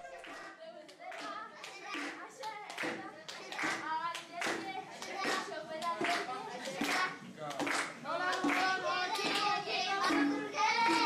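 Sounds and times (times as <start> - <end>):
children clapping in rhythm: 0.0 - 11.0
children singing: 4.4 - 7.2, 8.1 - 11.0.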